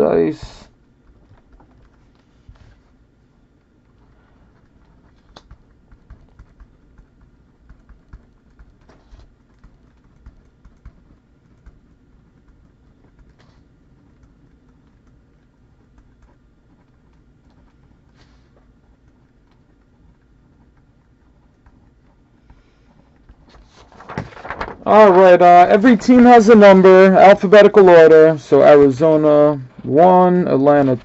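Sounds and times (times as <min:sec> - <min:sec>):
typing on computer keyboard: 0:04.6 - 0:17.8.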